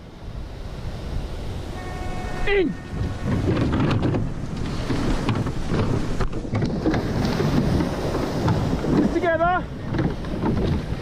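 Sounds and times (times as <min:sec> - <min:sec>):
surf: 0:00.0 - 0:11.0
water splashing around boat: 0:00.0 - 0:11.0
wind noise on microphone: 0:00.0 - 0:11.0.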